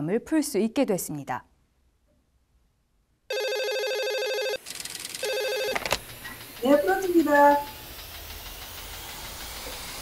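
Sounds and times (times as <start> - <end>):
telephone warbling ring: 3.3 - 4.6, 5.2 - 6.0.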